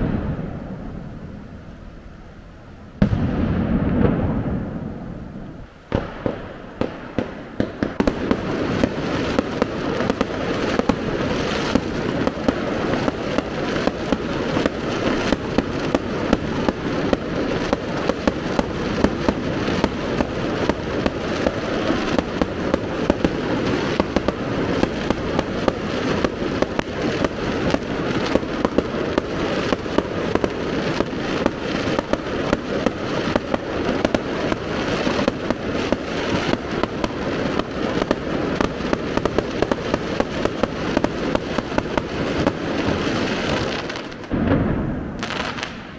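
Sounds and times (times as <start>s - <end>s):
fireworks banging and crackling: 0.0s - 45.9s.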